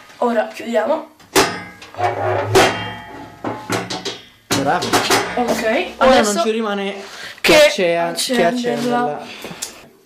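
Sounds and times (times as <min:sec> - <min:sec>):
metal lid clanking shut: 0:01.4 - 0:05.9.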